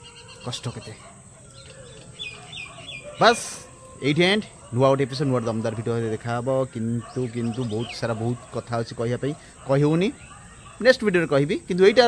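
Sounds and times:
bird chirping faintly: 0:00.0 - 0:11.5.

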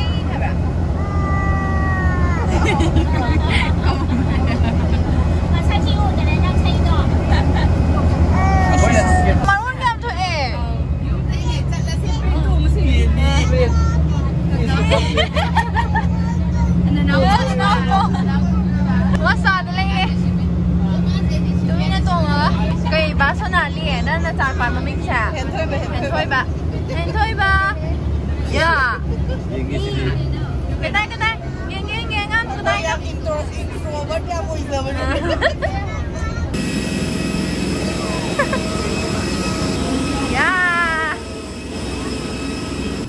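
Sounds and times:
bus engine droning: 0:00.0 - 0:43.0
passengers chatting: 0:00.0 - 0:43.0.

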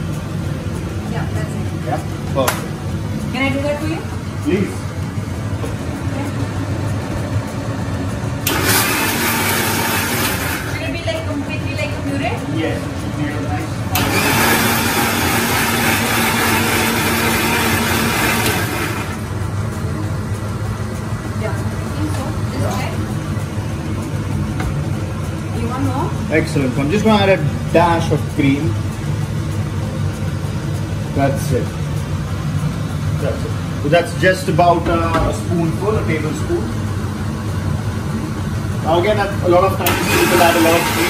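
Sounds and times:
steady low hum: 0:00.0 - 0:41.0
electric mixer grinder blending: 0:08.4 - 0:11.0, 0:13.9 - 0:19.3, 0:39.0 - 0:41.0.

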